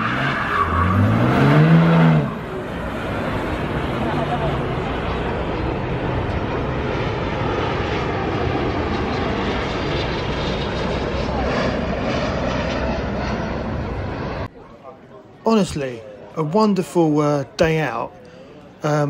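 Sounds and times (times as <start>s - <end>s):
loud engine noise: 0.0s - 14.5s
low hum: 0.9s - 14.6s.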